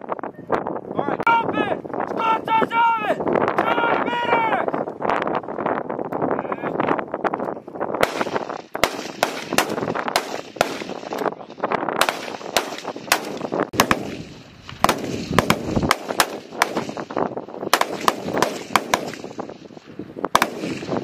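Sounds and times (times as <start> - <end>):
rifle single shots: 8.0 - 11.3, 12.0 - 19.6, 20.3 - 21.0.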